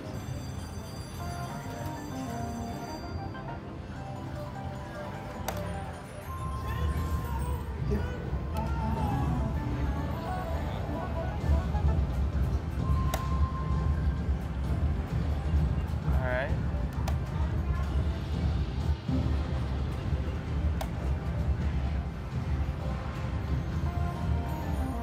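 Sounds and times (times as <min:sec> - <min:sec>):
slot machine music and chimes: 0:00.0 - 0:14.1, 0:23.2 - 0:25.0.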